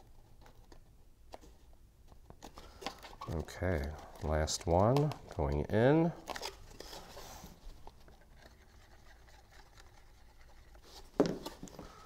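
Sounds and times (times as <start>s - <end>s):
handling of paper: 2.4s - 12.0s.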